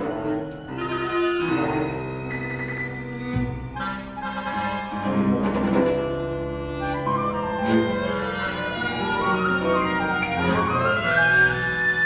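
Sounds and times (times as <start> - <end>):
chamber ensemble long-held notes: 0.0 - 12.0.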